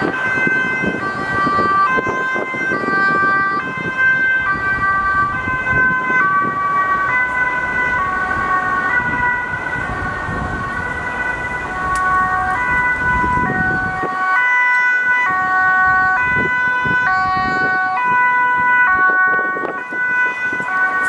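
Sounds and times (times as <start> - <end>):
road traffic noise: 0.0 - 21.0
two-tone ambulance siren: 0.0 - 21.0.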